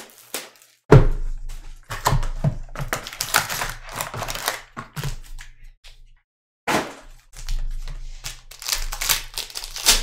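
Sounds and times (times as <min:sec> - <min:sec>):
foil wrappers crinkling: 0:00.0 - 0:00.8, 0:02.8 - 0:05.2, 0:07.4 - 0:10.0.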